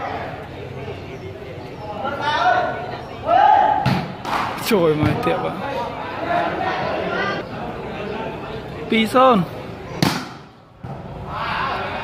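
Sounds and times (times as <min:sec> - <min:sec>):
crowd voices: 0:00.0 - 0:12.0
volleyball smacked by hand: 0:10.0 - 0:10.4.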